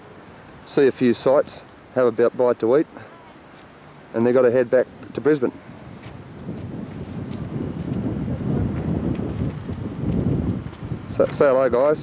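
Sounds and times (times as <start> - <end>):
wind buffeting microphone: 4.1 - 12.0.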